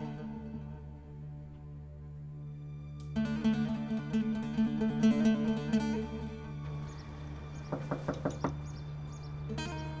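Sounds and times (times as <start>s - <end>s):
knocking on a door: 7.6s - 8.7s.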